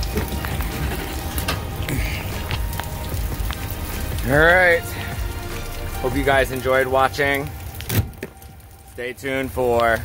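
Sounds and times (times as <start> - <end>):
rain on wet asphalt: 0.0 - 10.0.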